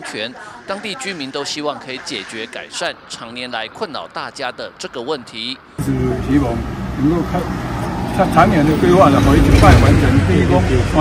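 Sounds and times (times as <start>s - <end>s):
truck engine rumbling: 5.8s - 11.0s.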